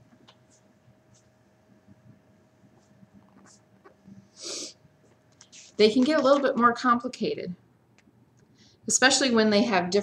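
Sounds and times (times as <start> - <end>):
person sniffing: 4.3 - 4.8.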